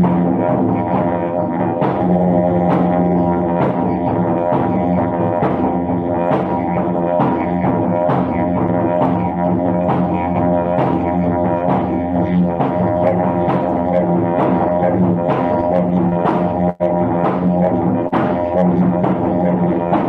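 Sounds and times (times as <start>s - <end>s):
didgeridoo drone: 0.0s - 20.0s.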